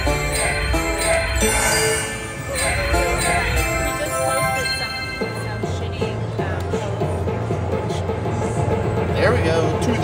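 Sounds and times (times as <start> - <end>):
slot machine celebration music: 0.0 - 6.3.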